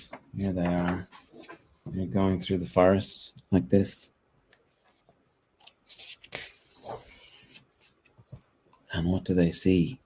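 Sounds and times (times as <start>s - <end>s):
book page turning: 5.6s - 8.2s.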